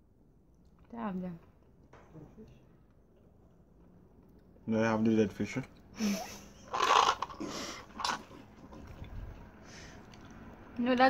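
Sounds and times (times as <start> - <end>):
person laughing breathily: 6.0 - 6.6.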